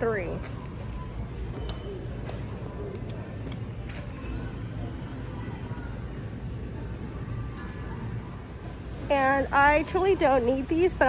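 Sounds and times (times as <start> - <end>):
store interior hum: 0.0 - 11.0.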